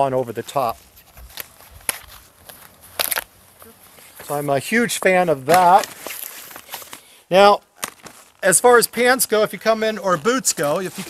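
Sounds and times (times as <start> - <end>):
straps and plastic armour rustling: 0.0 - 11.0.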